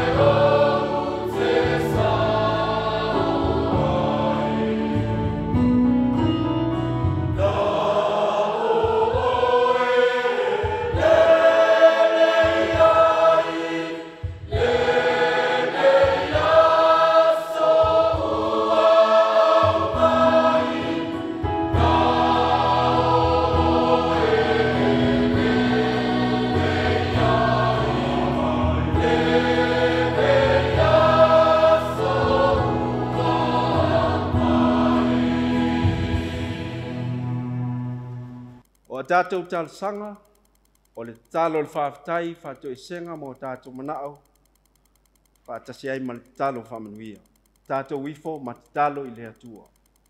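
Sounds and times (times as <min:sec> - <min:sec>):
choir singing a hymn: 0:00.0 - 0:05.9, 0:07.0 - 0:38.2
electronic keyboard: 0:14.5 - 0:38.9.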